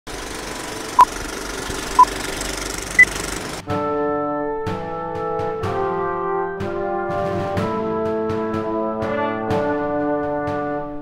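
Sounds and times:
brass music: 3.6 - 11.0.

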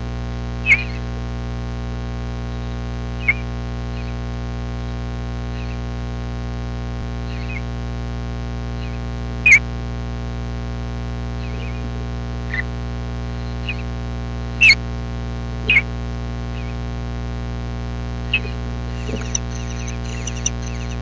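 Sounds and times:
steady electrical hum: 0.0 - 21.0
high bird chirps: 0.6 - 1.0, 2.6 - 4.2, 5.6 - 5.8, 7.3 - 7.6, 8.8 - 9.6, 11.4 - 11.8, 13.6 - 13.9, 16.6 - 16.8, 18.3 - 21.0.

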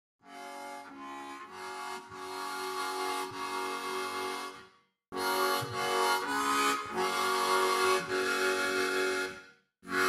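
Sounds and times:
harmonica chords: 0.2 - 10.0.

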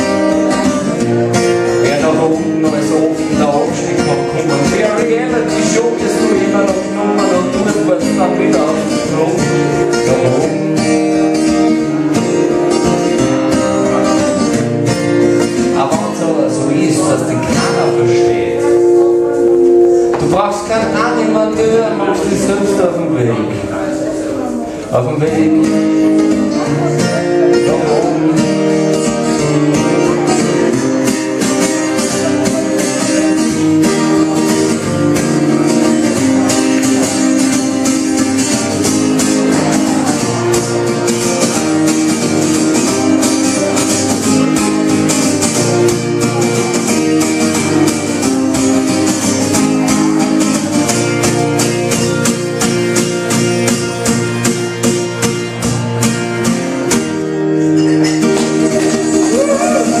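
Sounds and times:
acoustic guitar strummed fast: 0.0 - 60.0.

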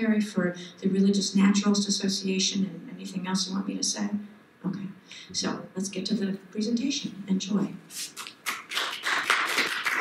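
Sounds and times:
audience applauding: 8.4 - 10.0.

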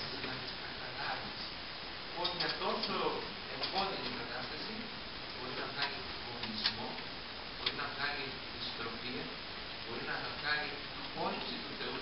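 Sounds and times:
man lecturing into microphone: 0.0 - 1.5, 2.1 - 12.0.

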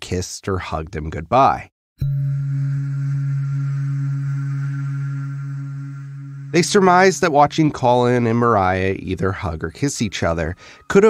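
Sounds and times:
low electronic drone: 2.0 - 8.6.

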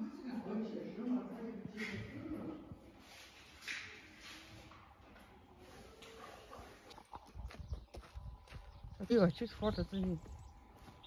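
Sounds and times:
footsteps on dirt: 6.9 - 11.0.

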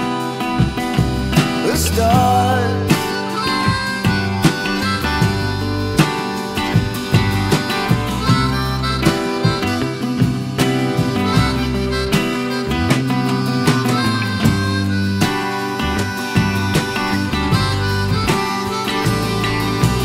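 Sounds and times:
fingerpicked acoustic guitar: 0.0 - 20.0
harmonica long held notes: 0.0 - 20.0.

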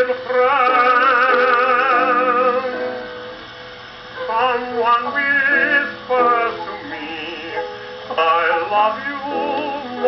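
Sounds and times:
man singing: 0.0 - 3.1, 4.2 - 10.0.

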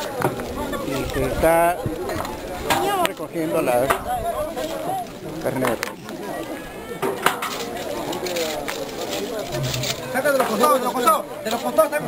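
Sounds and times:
people talking: 0.0 - 12.0
rustles and knocks of digging: 7.0 - 12.0.

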